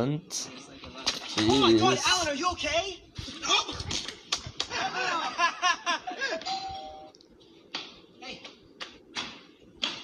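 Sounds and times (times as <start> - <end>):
laughter: 4.7 - 6.5.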